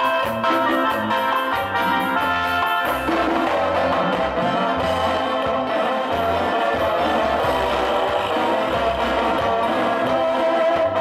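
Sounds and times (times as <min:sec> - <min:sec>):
bass line in held notes: 0:00.0 - 0:11.0
dance band music: 0:00.0 - 0:11.0.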